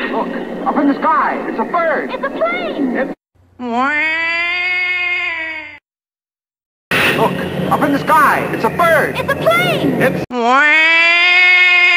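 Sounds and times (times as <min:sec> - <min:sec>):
drawn-out meow-like cry: 0:03.8 - 0:05.8, 0:10.4 - 0:11.9.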